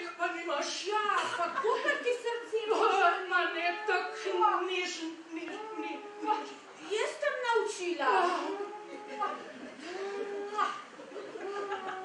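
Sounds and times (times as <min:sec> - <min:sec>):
person making moo-like sounds: 0:08.3 - 0:10.8.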